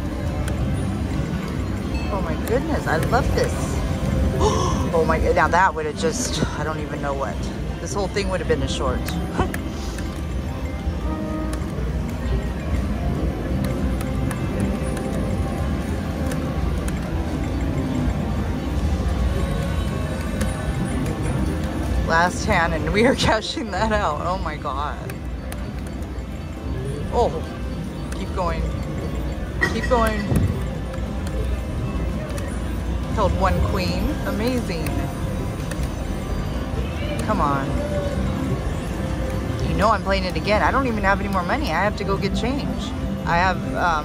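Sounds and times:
background music: 0:00.0 - 0:44.0
casino crowd din: 0:00.0 - 0:44.0.

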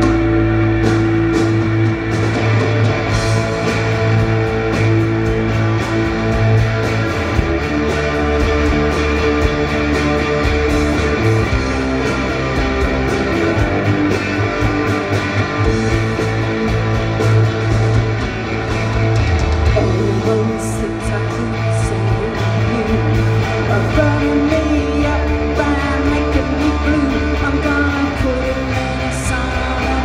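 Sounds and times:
bass guitar: 0:00.0 - 0:30.0
drum kit: 0:00.0 - 0:30.0
electric guitars through amplifiers: 0:00.0 - 0:30.0.

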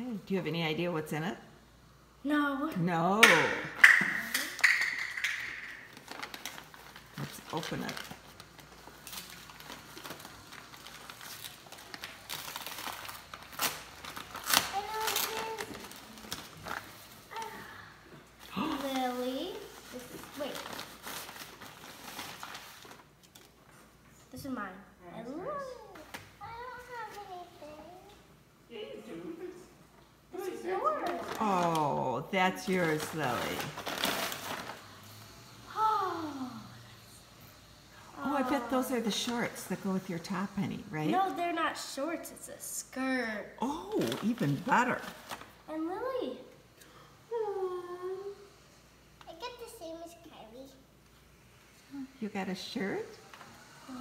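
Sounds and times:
plastic bag crinkling: 0:04.5 - 0:17.6, 0:18.4 - 0:23.5, 0:30.9 - 0:35.1, 0:43.7 - 0:45.6.

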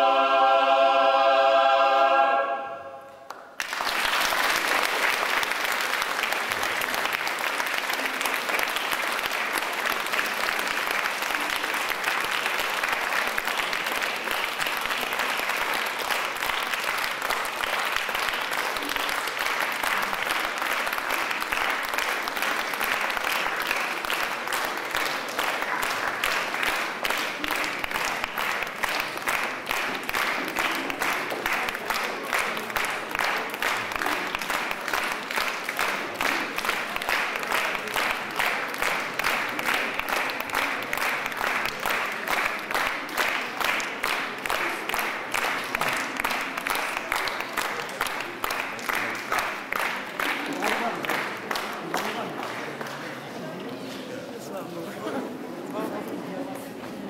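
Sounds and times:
choir singing: 0:00.0 - 0:03.3
audience applause: 0:03.3 - 0:53.6.

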